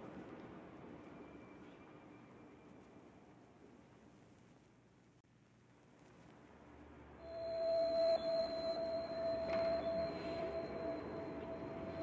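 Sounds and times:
ambient meditation music: 7.2s - 12.0s
faint high held tone: 7.2s - 12.0s
steady held mid tone: 7.2s - 12.0s.

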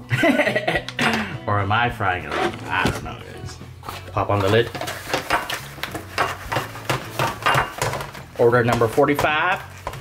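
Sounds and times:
aluminium foil pan crinkling: 3.8s - 10.0s.

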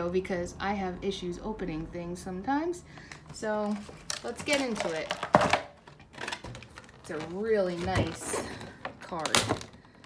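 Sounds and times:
handling noises: 2.9s - 10.0s.

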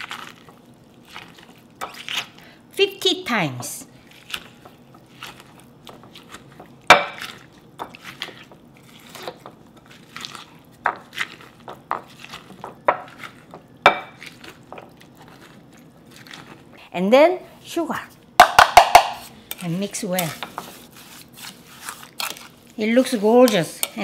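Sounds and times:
pestle pounding seeds in glass bowl: 18.4s - 19.3s.

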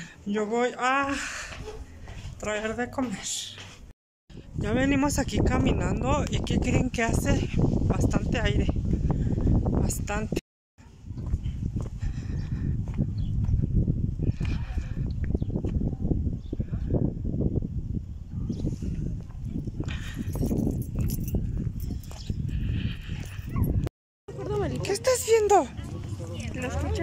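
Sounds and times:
gusty wind buffeting microphone: 4.3s - 23.9s.

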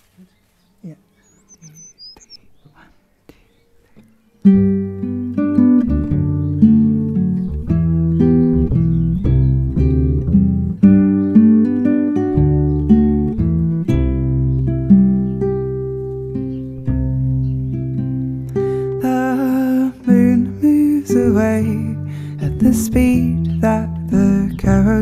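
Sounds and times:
plucked acoustic guitar: 4.4s - 25.0s
upright double bass: 4.6s - 18.5s, 21.2s - 25.0s.

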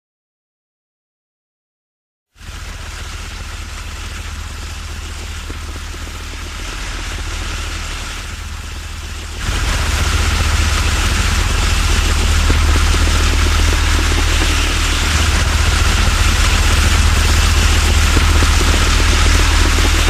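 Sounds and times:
engine rumble: 2.4s - 20.0s
hiss: 2.4s - 20.0s.

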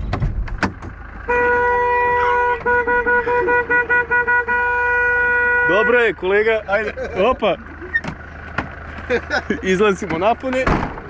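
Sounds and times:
car horn blasts and toots: 1.2s - 6.5s.

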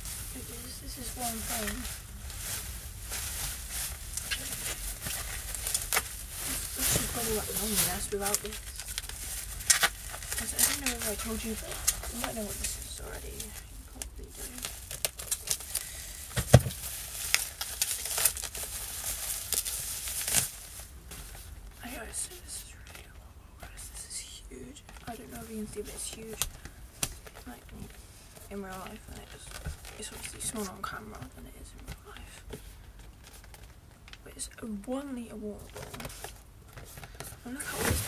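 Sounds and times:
bubble wrap crinkling: 0.0s - 38.0s.

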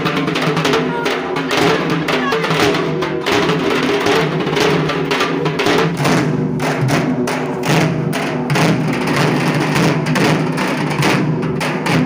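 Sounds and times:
barrel drums played with sticks: 0.0s - 12.0s.

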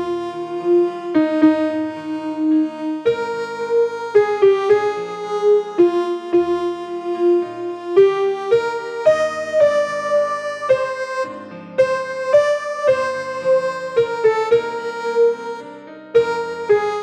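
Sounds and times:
keyboard melody line: 0.0s - 17.0s
piano accompaniment: 0.0s - 17.0s.

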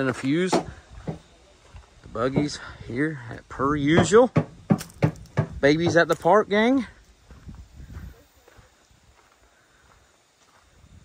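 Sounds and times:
faint footsteps on dirt: 0.0s - 11.0s
quiet outdoor ambience: 0.0s - 11.0s.

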